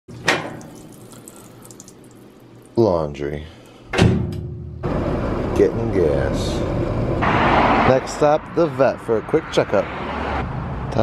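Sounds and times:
water running into tub: 0.1 - 3.8.

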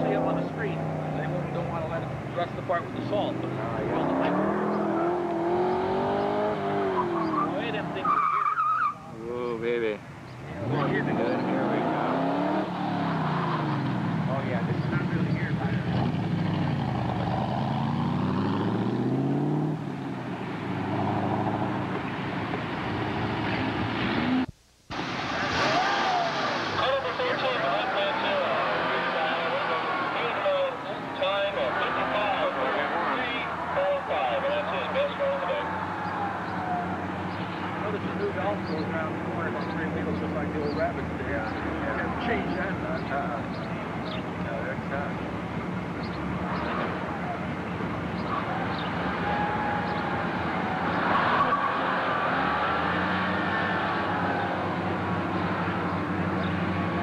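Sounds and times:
sports car engine revving: 0.0 - 8.2, 10.5 - 19.9, 26.9 - 57.0
voices: 0.0 - 17.8, 25.3 - 57.0.

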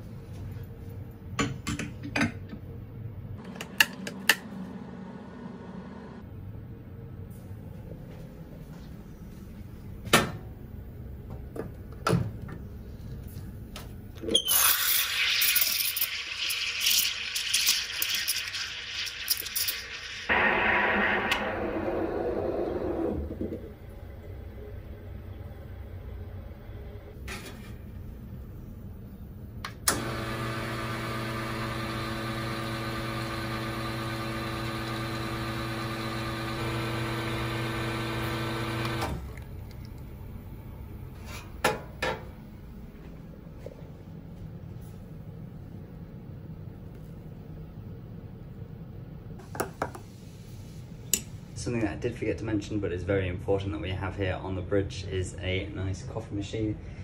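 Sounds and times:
espresso pump humming: 29.9 - 39.1.

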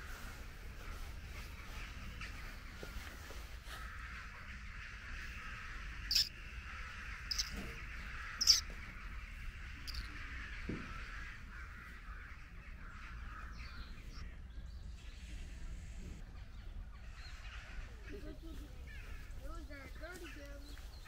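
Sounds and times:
distant bird chirping: 0.0 - 21.0
sharp bird calls: 0.0 - 21.0.

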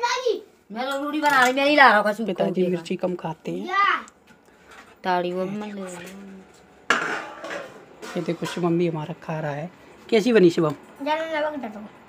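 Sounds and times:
steel dishes knocking together: 6.9 - 8.8.

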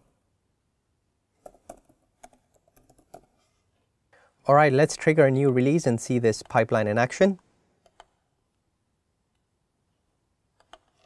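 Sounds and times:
faint keyboard typing: 1.4 - 3.5, 5.3 - 8.2, 10.6 - 11.0.

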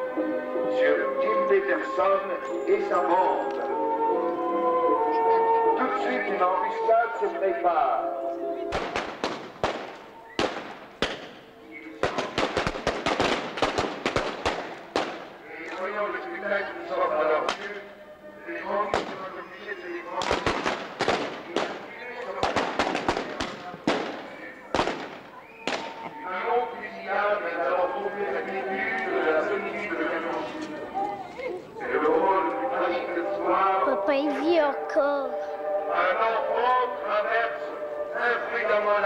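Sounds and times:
voices: 0.6 - 9.2, 14.6 - 39.0
rapid gunfire: 8.8 - 11.4, 12.0 - 15.3, 20.2 - 24.2, 24.8 - 25.9.

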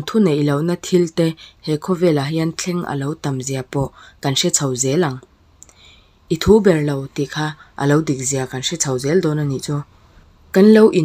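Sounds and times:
faint clicks: 5.2 - 5.8.

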